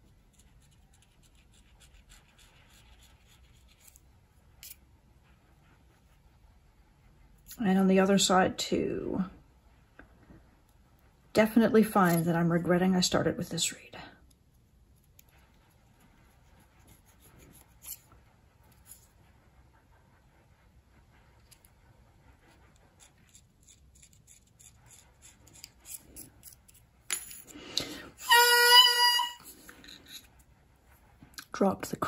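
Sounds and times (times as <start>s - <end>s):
knife scraping reed cane: 23.0s - 26.8s.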